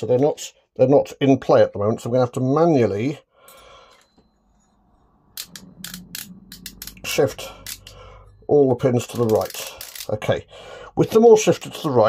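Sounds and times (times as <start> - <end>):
faint low hum: 3.5 - 12.0
metal pins clicking and rattling: 9.1 - 10.2.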